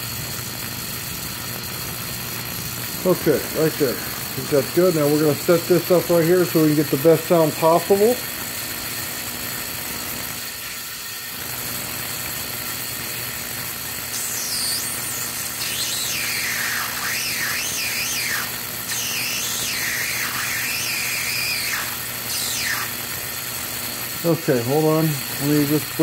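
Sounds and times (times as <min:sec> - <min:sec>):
tesla coil humming: 0:00.0 - 0:26.0
high warbling squeal: 0:14.1 - 0:23.0.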